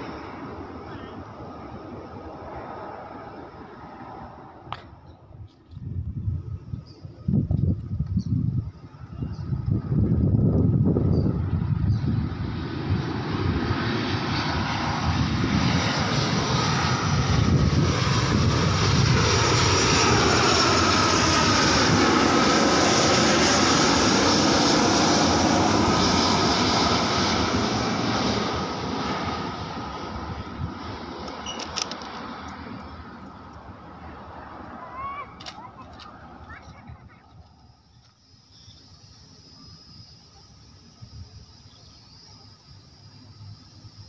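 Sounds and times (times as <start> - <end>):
jet airliner passing overhead: 0.0 - 44.0
jet engine whine: 0.0 - 44.0.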